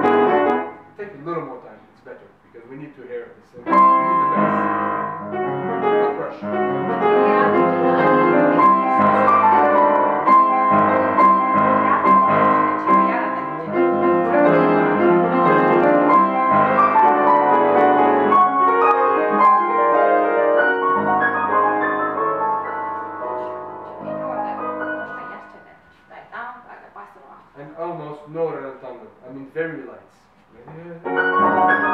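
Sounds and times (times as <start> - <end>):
grand piano classical piece: 0.0 - 1.4, 3.5 - 26.3, 31.0 - 31.9.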